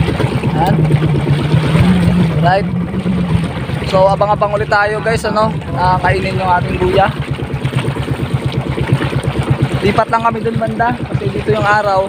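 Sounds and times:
small boat engine chugging: 0:00.0 - 0:12.0.

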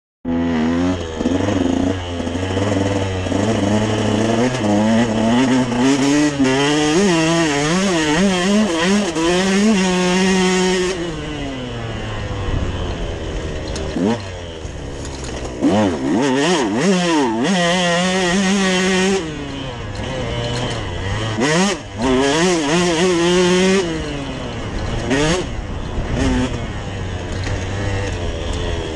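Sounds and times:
dirt bike engine revving: 0:00.3 - 0:28.9.

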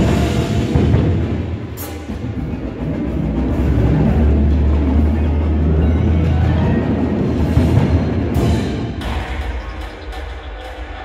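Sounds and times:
percussion ensemble playing: 0:00.0 - 0:11.0.

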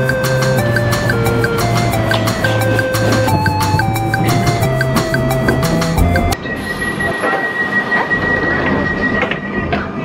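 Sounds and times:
train rattling rumble: 0:00.0 - 0:10.0.

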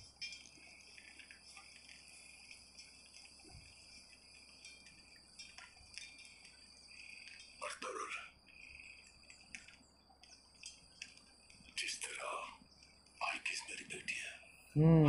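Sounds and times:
crickets chirping: 0:00.0 - 0:15.0.

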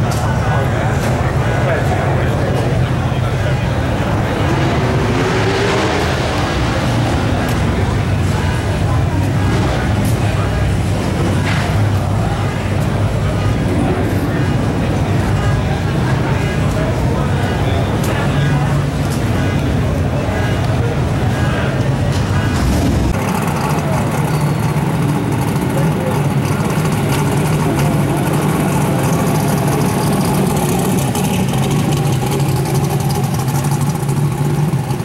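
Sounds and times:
car engine idling: 0:00.0 - 0:35.0.

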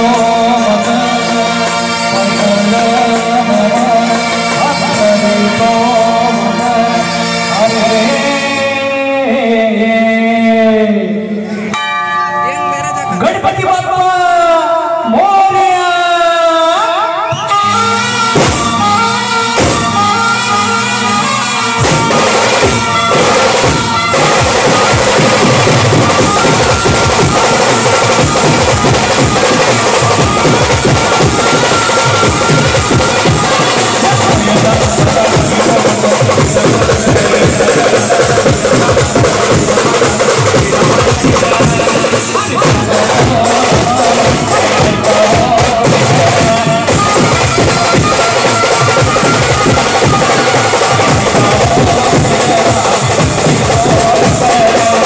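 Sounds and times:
brass band processional music: 0:00.0 - 0:55.0
bass and snare drumming: 0:17.3 - 0:55.0.

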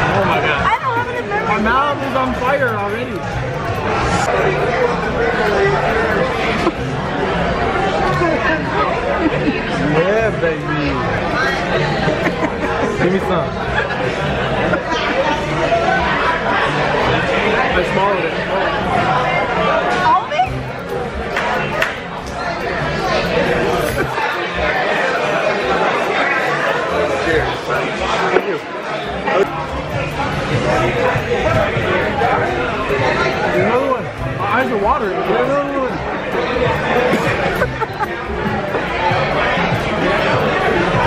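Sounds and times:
diners chattering: 0:00.0 - 0:41.0.

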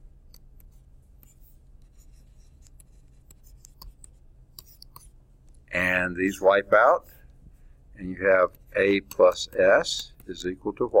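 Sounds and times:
low steady hum: 0:00.0 - 0:11.0
stylus tapping and scratching screen: 0:00.0 - 0:11.0.

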